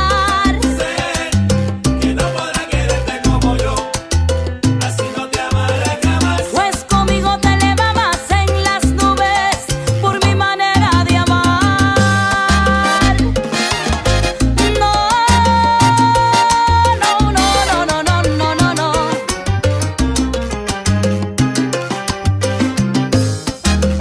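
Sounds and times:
salsa band playing: 0:00.0 - 0:24.0.

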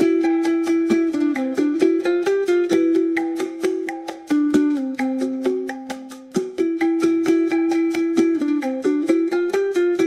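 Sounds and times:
plucked guitar melody: 0:00.0 - 0:10.0.

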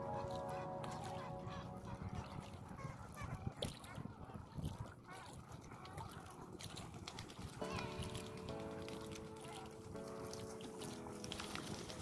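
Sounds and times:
waterbirds calling and chattering: 0:00.0 - 0:12.0.

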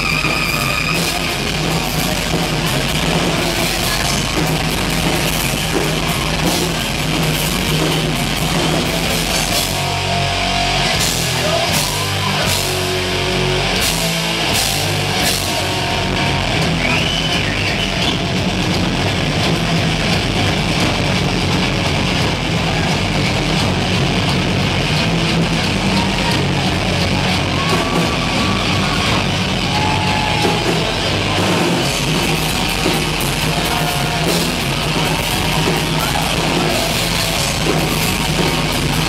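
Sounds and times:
sliding high guitar notes: 0:00.0 - 0:17.4
heavy metal band playing live: 0:00.0 - 0:39.0.

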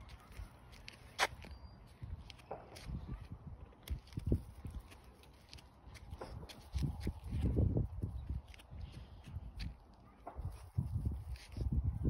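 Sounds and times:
rustling dry grass: 0:10.3 - 0:12.0.

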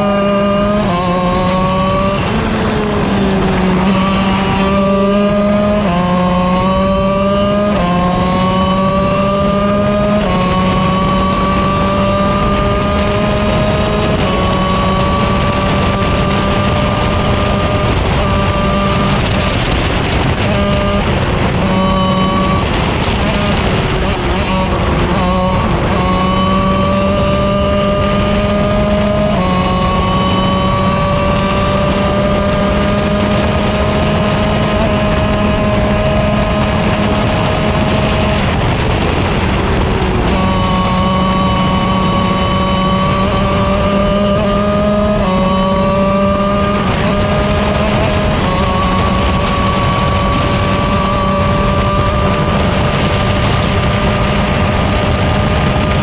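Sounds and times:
kart engine at full throttle: 0:00.0 - 0:56.0.

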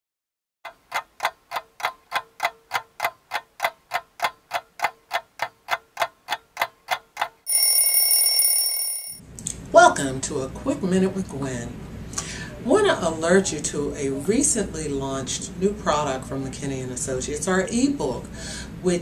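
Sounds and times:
stopwatch ticking: 0:00.7 - 0:09.2
bright ringing bell: 0:07.5 - 0:09.2
woman's voice: 0:12.6 - 0:19.0.

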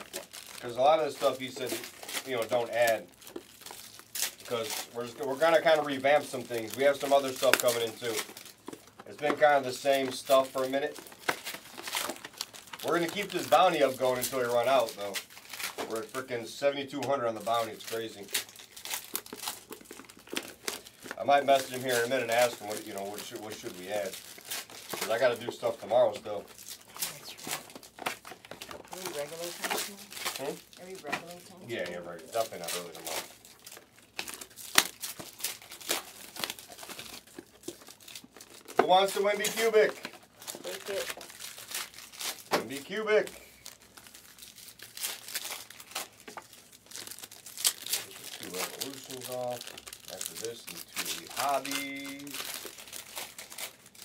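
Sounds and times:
card pack wrappers crinkling: 0:00.0 - 0:54.0.

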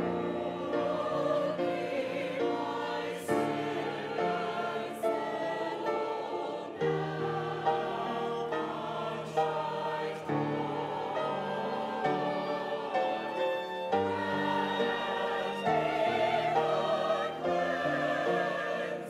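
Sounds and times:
church choir singing: 0:00.0 - 0:19.0.

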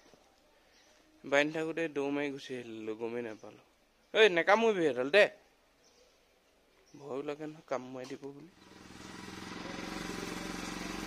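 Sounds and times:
motorcycle engine idling: 0:08.5 - 0:11.0.

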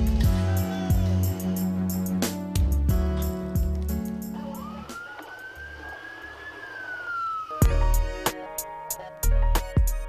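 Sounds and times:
music with heavy beat: 0:00.0 - 0:04.6, 0:07.6 - 0:10.0
music: 0:00.0 - 0:05.9, 0:07.5 - 0:10.0
siren wail: 0:04.3 - 0:08.1.

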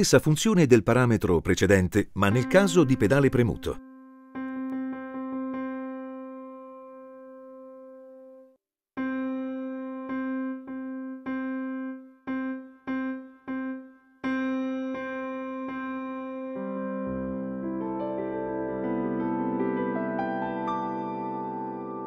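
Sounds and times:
digital piano repeated note: 0:02.3 - 0:08.4, 0:09.0 - 0:22.0.

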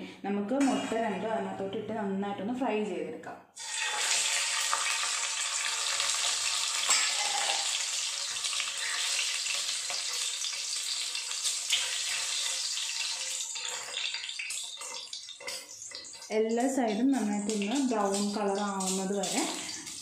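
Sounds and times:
eggs sizzling in hot oil: 0:03.6 - 0:20.0
metal spoon clinking on pan: 0:06.8 - 0:07.6, 0:11.7 - 0:17.0.

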